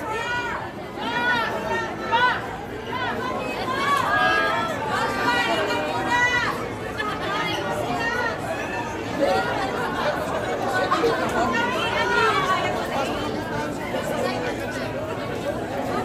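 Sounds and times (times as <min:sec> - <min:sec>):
overlapping chatter of people: 0:00.0 - 0:16.0.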